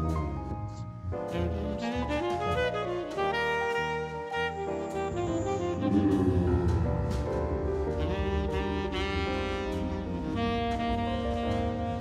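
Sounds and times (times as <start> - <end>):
jazz saxophone music: 0.0 - 12.0.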